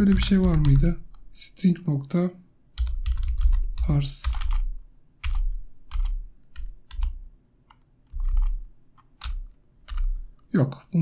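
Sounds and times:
computer keyboard keystrokes: 0.0 - 1.2, 2.8 - 10.2.

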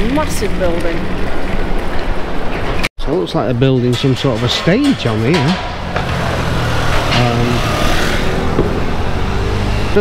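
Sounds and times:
car driving past on cobbles: 4.0 - 10.0.

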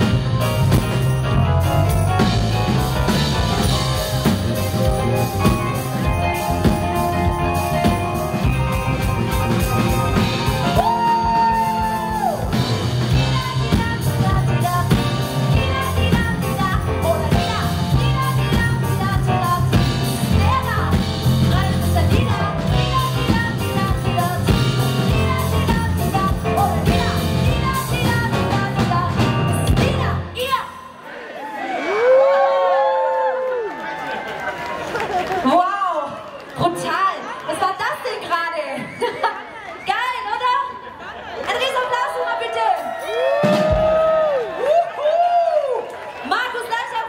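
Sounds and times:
pop rock band playing: 0.0 - 30.6, 42.9 - 44.4
murmur of crowd: 0.0 - 47.0
audience cheering and shouting: 2.2 - 14.6, 30.2 - 47.0.

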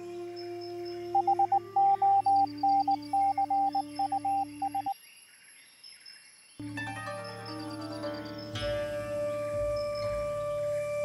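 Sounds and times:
droning background music: 0.0 - 4.9, 6.6 - 11.0
morse code beeping: 1.1 - 4.9.

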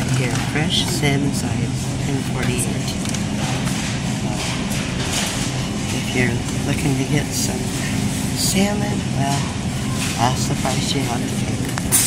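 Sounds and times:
refrigerated cases humming: 0.0 - 12.0.

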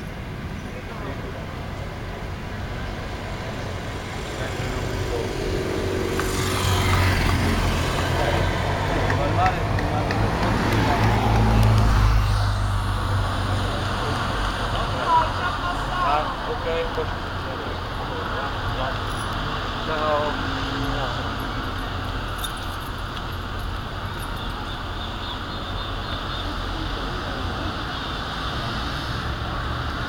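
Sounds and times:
vehicles passing close by: 0.0 - 30.0.

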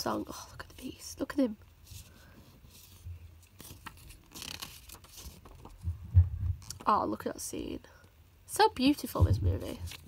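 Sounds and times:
paper pages rustling: 1.8 - 5.8, 9.5 - 10.0.

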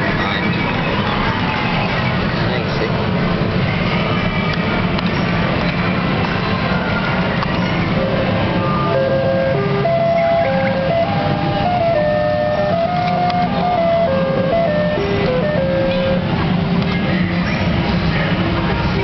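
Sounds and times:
fruit machine electronic jingle: 8.0 - 16.3.

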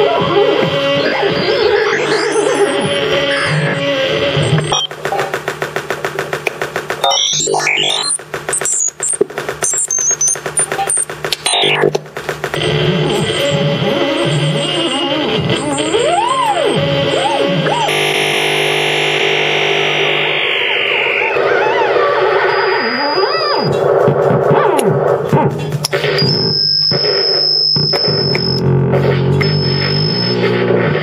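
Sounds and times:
dense electronic drones: 0.0 - 31.0
rising and falling pitch arcs: 0.9 - 4.9, 12.6 - 24.0
high steady tone: 12.6 - 23.8.

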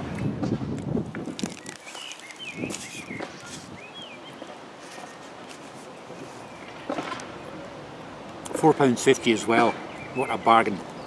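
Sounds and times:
biting and chewing food: 0.7 - 3.6
paper wrapper rustling: 1.2 - 3.8
bird chirping: 1.4 - 5.2, 6.3 - 7.9, 9.0 - 11.0.

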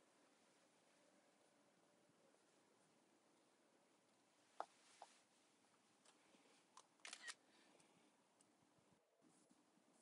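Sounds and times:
camera shutter double click: 7.0 - 7.4.

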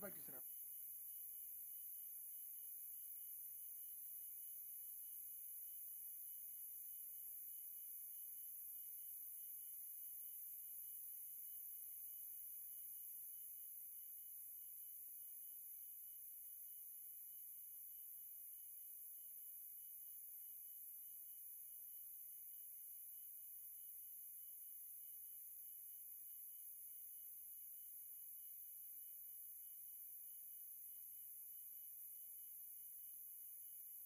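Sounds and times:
faint electronic hiss: 0.0 - 8.0.

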